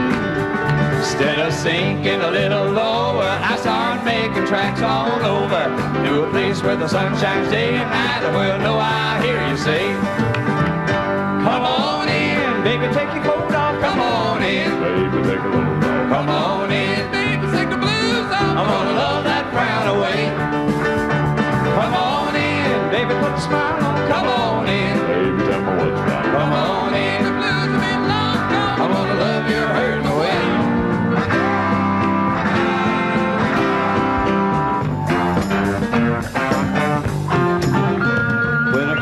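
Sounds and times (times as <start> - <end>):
country band music: 0.0 - 39.0
group vocal harmony singing: 1.0 - 10.1, 11.4 - 20.7, 21.6 - 32.3.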